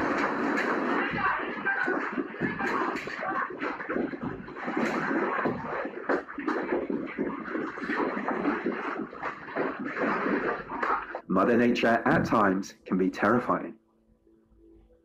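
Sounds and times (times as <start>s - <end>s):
office objects rattling and clattering: 0.0s - 11.3s.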